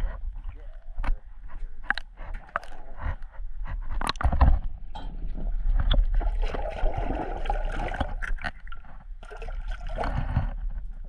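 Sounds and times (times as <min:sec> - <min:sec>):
water splashing and sloshing: 0:00.0 - 0:11.0.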